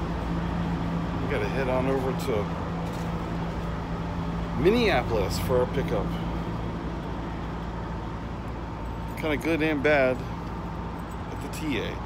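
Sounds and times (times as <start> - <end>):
diesel truck engines idling: 0.0 - 12.0.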